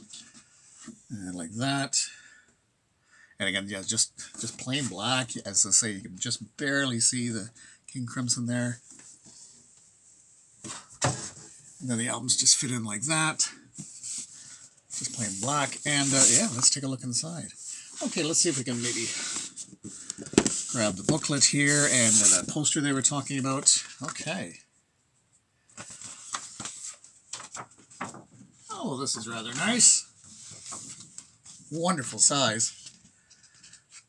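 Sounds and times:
cardboard rustle: 13.8s - 16.8s, 17.9s - 22.8s
handling cardboard box: 13.8s - 16.8s
paper sheets rustling: 13.9s - 16.8s, 17.7s - 24.2s, 25.8s - 34.0s.

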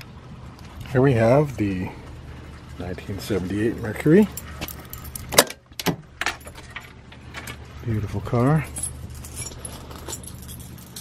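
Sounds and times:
low steady hum: 0.0s - 11.0s
keys jingling: 4.3s - 5.4s, 6.3s - 7.6s, 8.4s - 11.0s.

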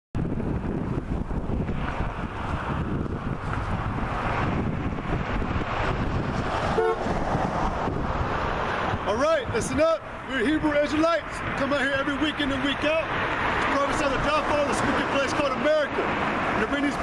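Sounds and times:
road traffic rumbling: 0.2s - 17.0s
car horn toot: 6.8s - 7.1s.

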